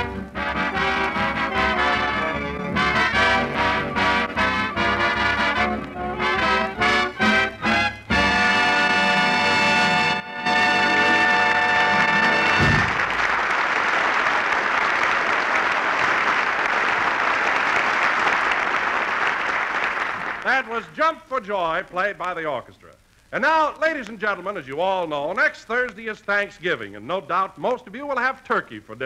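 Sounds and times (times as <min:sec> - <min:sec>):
swing orchestra with brass: 0:00.0 - 0:13.0
audience applause: 0:11.1 - 0:20.8.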